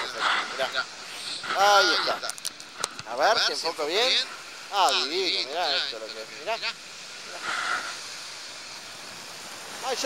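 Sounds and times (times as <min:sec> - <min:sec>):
small waves washing at shore: 0:00.0 - 0:10.0.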